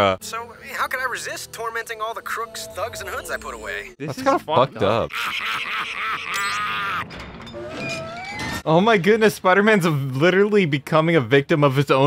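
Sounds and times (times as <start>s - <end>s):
men shouting and jeering: 4.3s - 7.1s.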